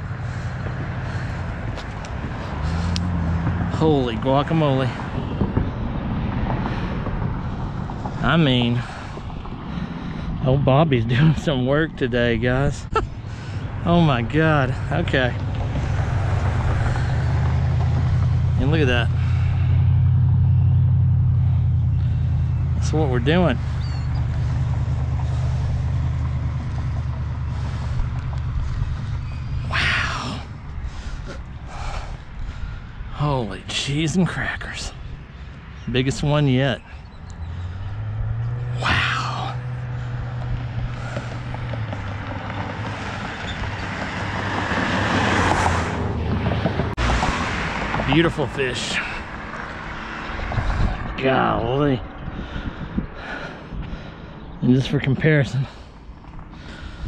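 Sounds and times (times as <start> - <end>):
low outdoor rumble: 0.0 - 57.0
vehicle engine humming: 0.0 - 57.0.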